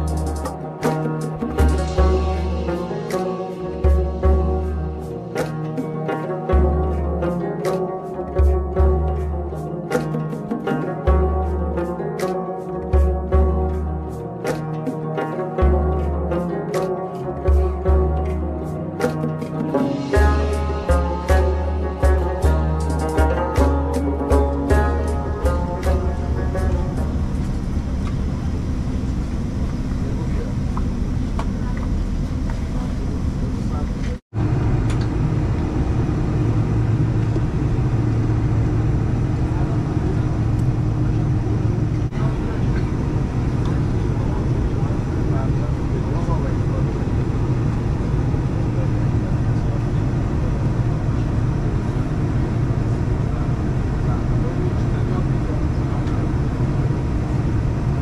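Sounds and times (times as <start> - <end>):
aircraft engine hum in cabin: 25.4 - 58.0.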